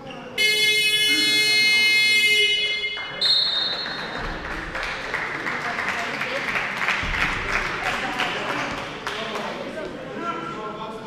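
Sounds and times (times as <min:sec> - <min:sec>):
scoreboard buzzer: 0:00.4 - 0:03.9.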